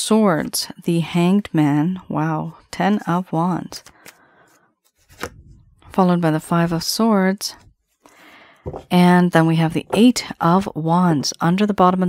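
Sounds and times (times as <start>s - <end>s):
card rustling: 3.8s - 5.8s.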